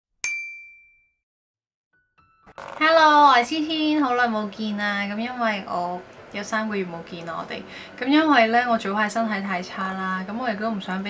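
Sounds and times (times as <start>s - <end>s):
bright bell-like ding: 0.2s - 1.2s.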